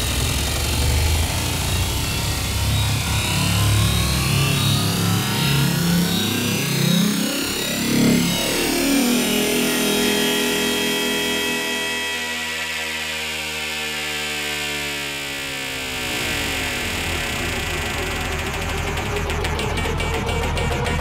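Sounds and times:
electronic bass music: 0.0s - 12.2s, 16.2s - 21.0s
synthesizer tone gliding down: 0.0s - 21.0s.

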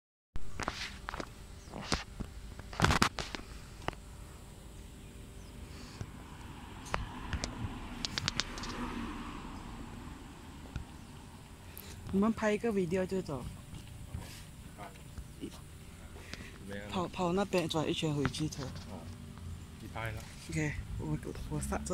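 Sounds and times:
low outdoor background: 0.4s - 21.9s.

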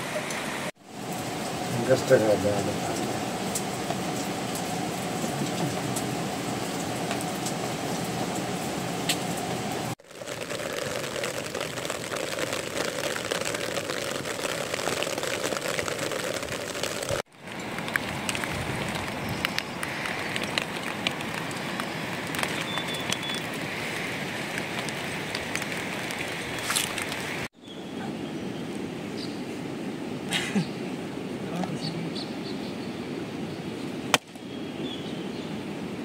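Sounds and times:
steady rain falling: 0.0s - 27.5s.

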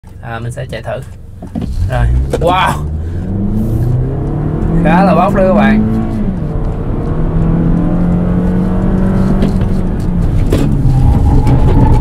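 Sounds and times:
car engine accelerating: 1.6s - 12.0s.

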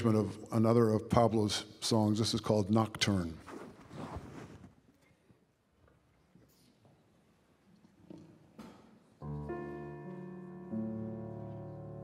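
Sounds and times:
faint hall noise: 0.0s - 12.0s.

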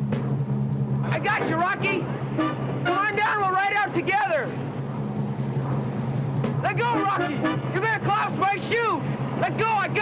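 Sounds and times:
steady low hum: 0.0s - 10.0s
men shouting: 2.8s - 4.5s, 6.6s - 10.0s.

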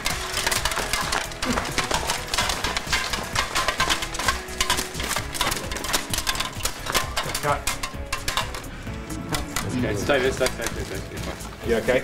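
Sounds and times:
background music: 0.0s - 12.0s
metallic clinking of armour plates: 0.0s - 12.0s.

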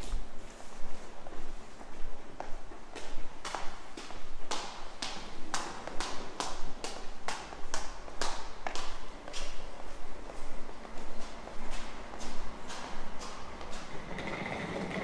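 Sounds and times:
hard-soled footsteps on stairs: 0.0s - 15.0s.

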